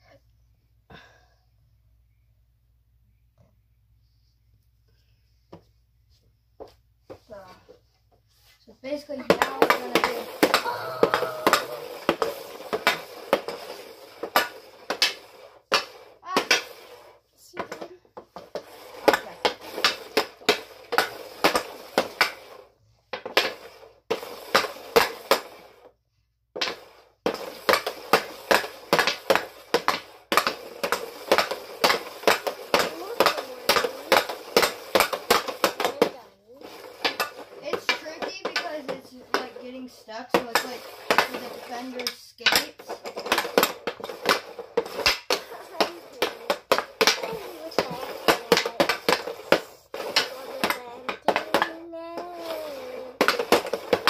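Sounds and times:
hockey stick tapping puck: 9.1 - 25.7, 26.6 - 54.0.

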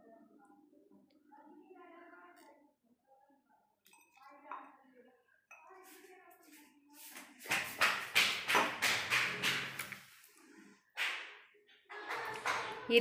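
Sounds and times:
scrapes and rustles on counter: 5.5 - 10.8.

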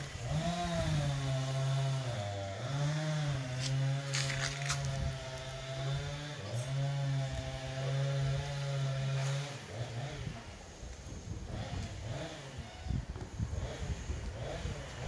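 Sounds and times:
small engine running: 0.0 - 15.0.

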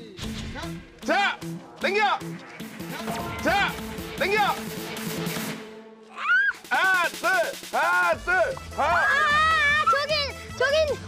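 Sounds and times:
background music: 0.0 - 11.0
team rhythmic shouting: 6.3 - 11.0.

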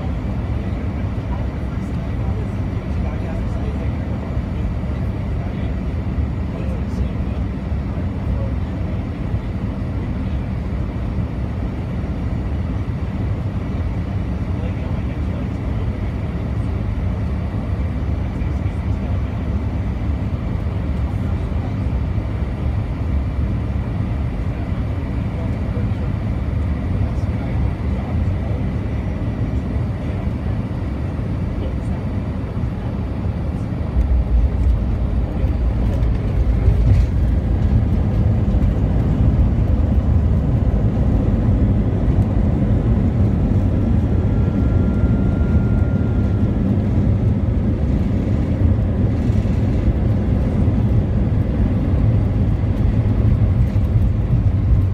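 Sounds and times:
airliner engines and airflow rumble: 0.0 - 54.9
jet touching down and rolling: 33.8 - 47.1.

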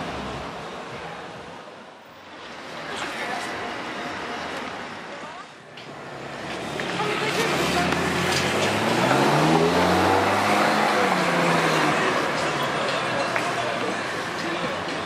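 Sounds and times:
sports car accelerating past: 7.4 - 12.4.

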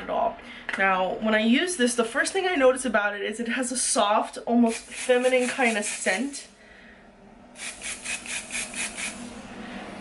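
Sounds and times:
hair being combed: 4.7 - 6.4, 7.6 - 9.4.

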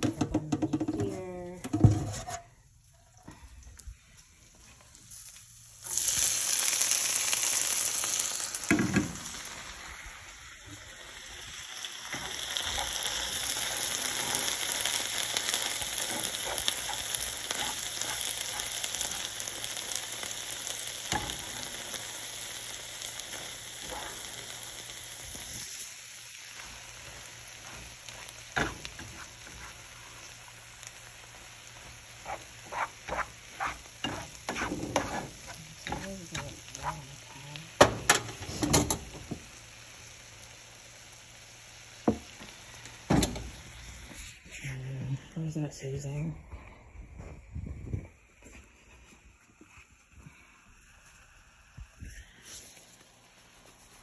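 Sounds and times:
spatula scraping a pan: 1.8 - 2.5, 12.2 - 19.6, 27.1 - 30.4, 32.1 - 37.4
food sizzling in a frying pan: 2.8 - 44.5, 50.8 - 54.0.

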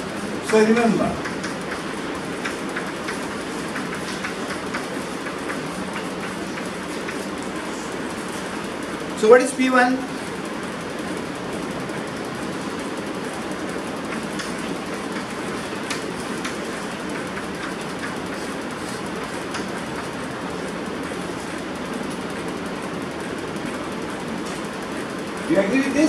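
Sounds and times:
room noise hiss: 0.0 - 26.0.

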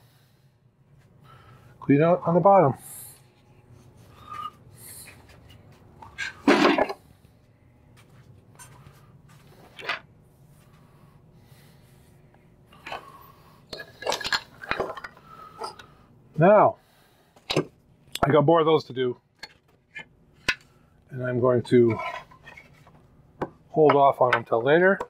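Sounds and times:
clatter of tools: 13.7 - 15.8.

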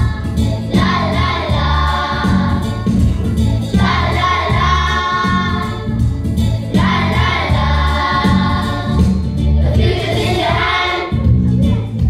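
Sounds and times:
children's choir singing: 0.0 - 11.4
instrumental backing with bass line: 0.0 - 12.0.

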